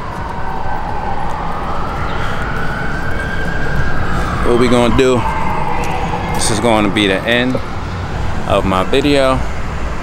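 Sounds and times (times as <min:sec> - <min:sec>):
street traffic: 0:00.0 - 0:10.0.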